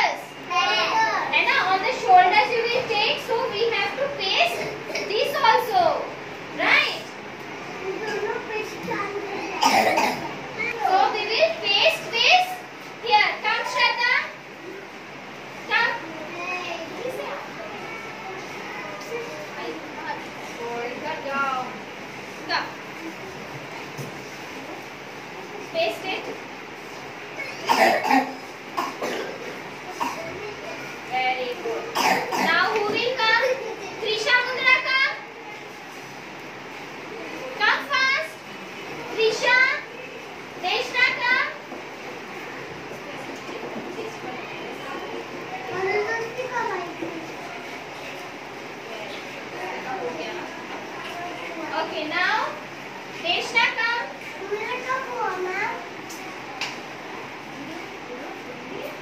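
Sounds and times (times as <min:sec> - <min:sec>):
young children chattering: 0:00.0 - 0:59.0
person coughing: 0:09.6 - 0:10.2, 0:27.4 - 0:29.4, 0:31.9 - 0:32.5.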